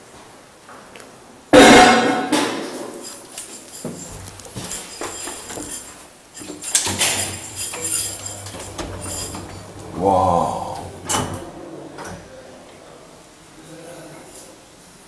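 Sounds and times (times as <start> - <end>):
elevator machinery hum: 6.4 - 12.1.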